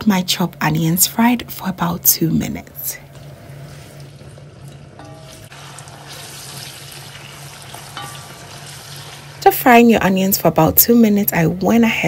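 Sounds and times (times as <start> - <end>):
wooden spoon stirring: 3.1 - 9.5
onions sizzling in oil: 3.4 - 10.5.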